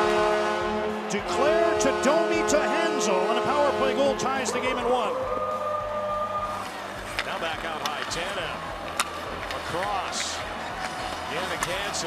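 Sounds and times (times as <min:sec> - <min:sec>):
crowd voices: 0:00.0 - 0:12.0
stick hitting puck: 0:07.1 - 0:12.0.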